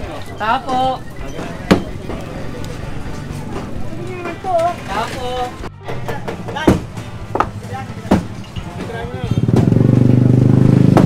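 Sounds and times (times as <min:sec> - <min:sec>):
people talking: 0:00.0 - 0:10.4
motorcycle engine running: 0:07.0 - 0:11.0.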